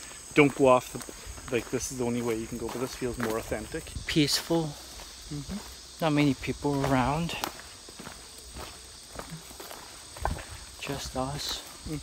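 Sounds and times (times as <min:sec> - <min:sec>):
footsteps crunching on leaf litter: 0:00.0 - 0:12.0
person speaking: 0:00.4 - 0:07.6.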